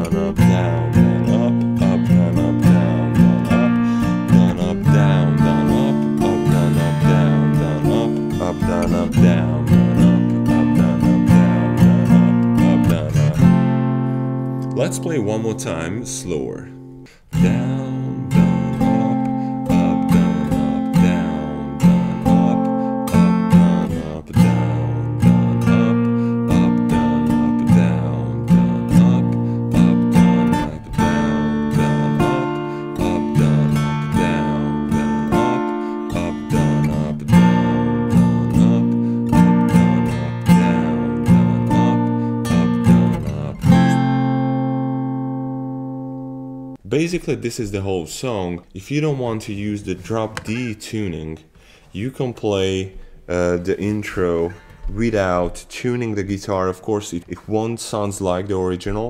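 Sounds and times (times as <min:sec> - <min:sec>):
acoustic guitar strumming chords: 0:00.0 - 0:47.4.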